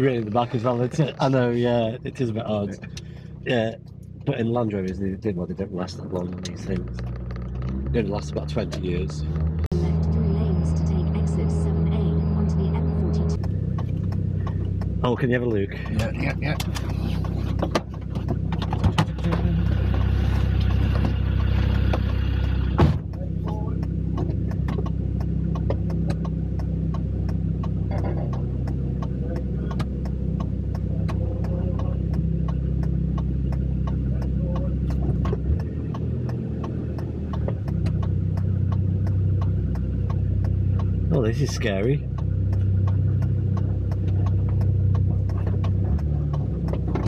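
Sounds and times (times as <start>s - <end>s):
car engine running: 0.0s - 47.0s
light clicks and rattles: 5.8s - 9.7s.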